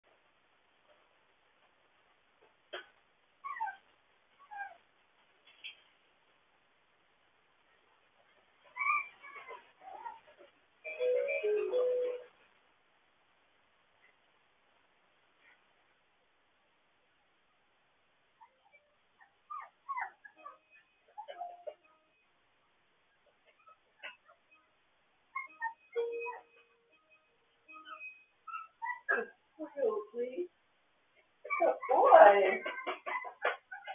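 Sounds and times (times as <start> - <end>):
puppy squeak: 3.4 - 3.8, 8.7 - 10.2, 18.4 - 22.0, 23.5 - 24.7, 25.3 - 26.8, 27.7 - 29.3, 31.4 - 33.9
puppies whimpering: 8.7 - 10.2, 18.4 - 21.8, 25.4 - 26.6, 27.7 - 29.2.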